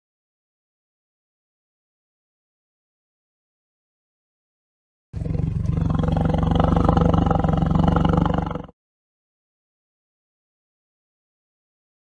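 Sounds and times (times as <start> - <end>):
tiger roar: 5.2 - 8.8.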